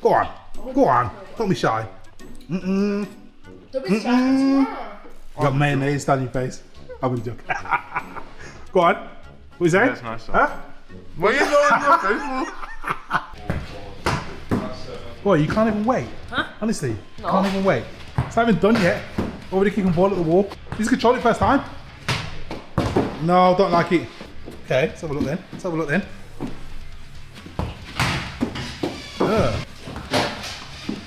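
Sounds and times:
football kicked against wall: 22.0s - 23.2s, 27.6s - 28.6s.

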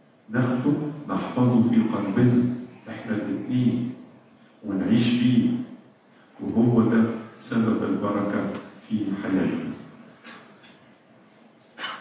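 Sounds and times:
man speaking into a microphone: 0.3s - 10.4s.

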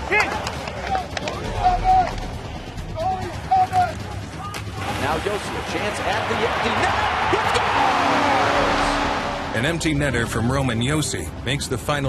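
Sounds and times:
background music: 0.0s - 12.0s
players shouting calls: 3.0s - 4.8s, 6.0s - 9.6s.

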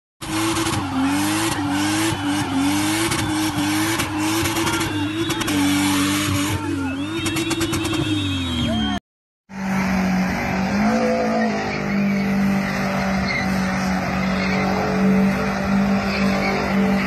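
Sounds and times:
car engine at high revs: 0.2s - 8.5s, 9.5s - 17.0s
people shouting: 0.3s - 9.0s
whistles: 2.1s - 5.8s, 6.8s - 9.0s
tyre screech: 9.8s - 17.0s.

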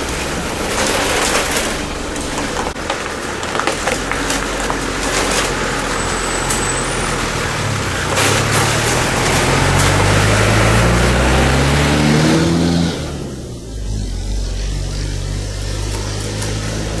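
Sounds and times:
bus engine passing: 0.0s - 17.0s
van engine: 0.0s - 17.0s.

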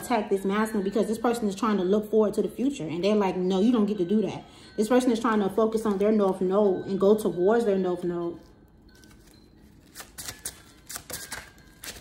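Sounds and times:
cards snapping and rustling: 9.0s - 12.0s.

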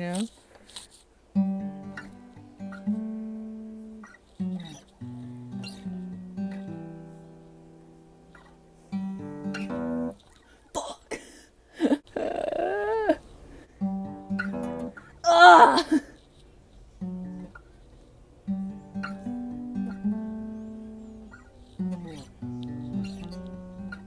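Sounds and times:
acoustic guitar picked slowly: 1.3s - 10.2s, 11.8s - 16.1s, 17.0s - 24.0s.

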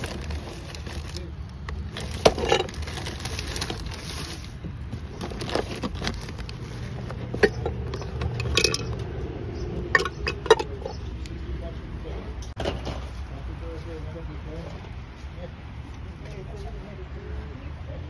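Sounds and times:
bubble wrap crinkling: 0.0s - 7.9s
ceramic and glass clinking: 7.3s - 9.0s, 9.8s - 11.0s.

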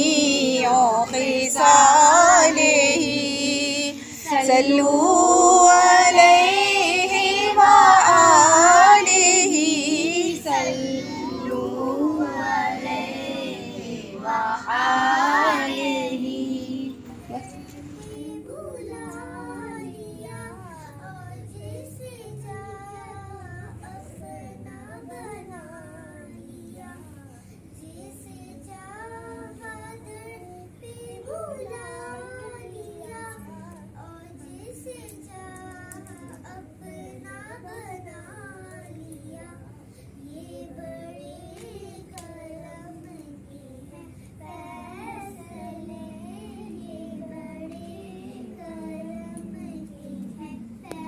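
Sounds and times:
high child-like singing voice: 0.0s - 27.1s, 40.6s - 51.0s.

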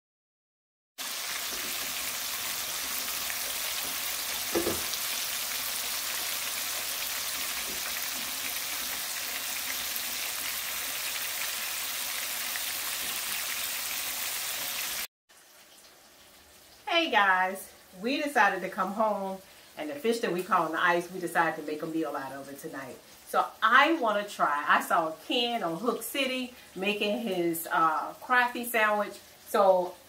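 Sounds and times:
fish frying in hot oil: 1.0s - 20.0s
brief thump: 4.5s - 4.9s.

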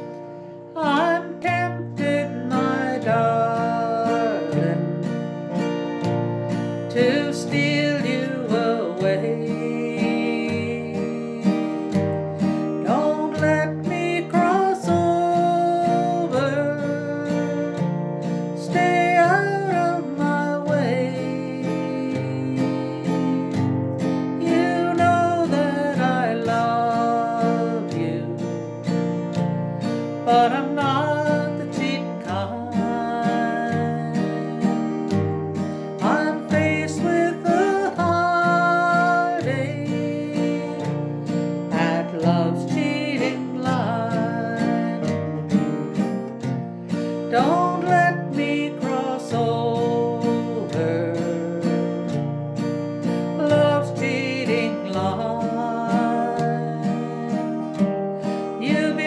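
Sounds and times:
strummed acoustic guitar: 0.0s - 59.0s
woman singing a country song: 0.6s - 59.0s.

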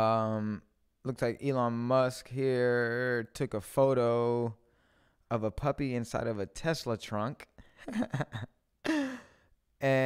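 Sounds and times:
man laughing: 7.8s - 9.4s.

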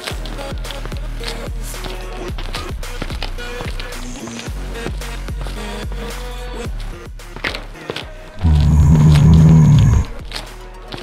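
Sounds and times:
deep animal roar: 8.4s - 10.3s.

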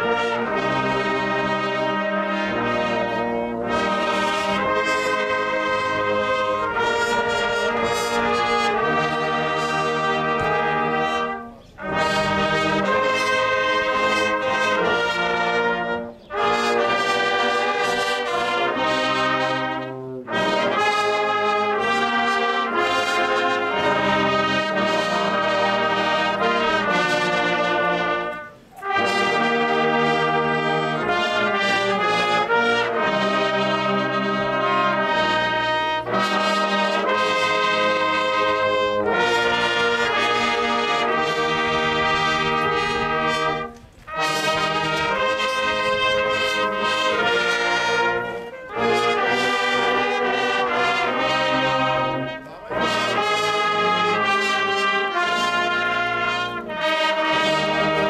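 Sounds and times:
brass band playing: 0.0s - 58.0s.

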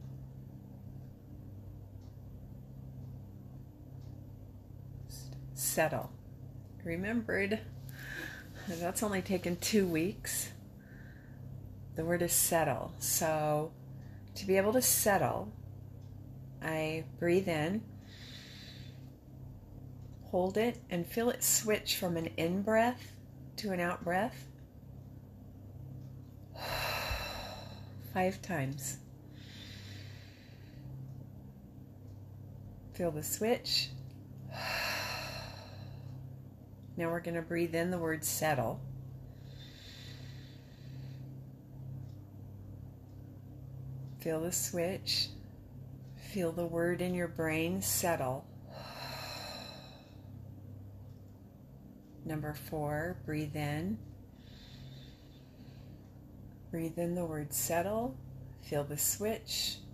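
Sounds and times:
low room hum: 0.0s - 59.9s.

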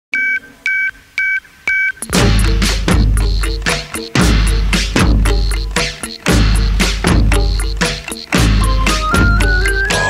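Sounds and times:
telephone keypad beeps: 0.2s - 2.0s.

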